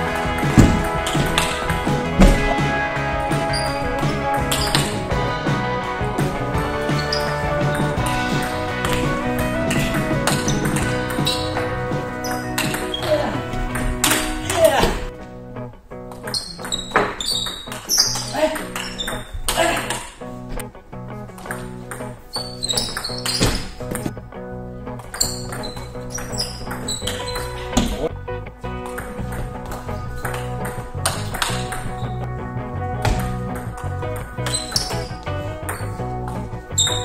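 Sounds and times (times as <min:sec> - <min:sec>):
background music: 0:00.0 - 0:37.0.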